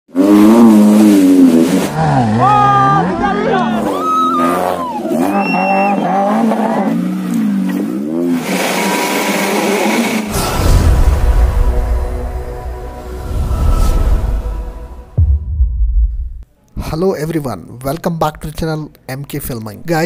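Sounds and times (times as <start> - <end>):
off-road engines revving: 0.1 - 10.6
spectators shouting: 2.3 - 6.2.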